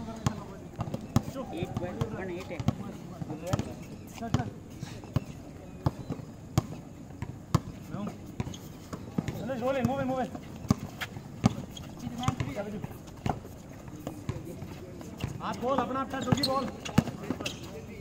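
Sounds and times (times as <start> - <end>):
basketball bouncing on concrete: 0.1 - 3.7, 4.3 - 4.5, 5.8 - 7.8, 8.4 - 14.5, 15.2 - 17.5.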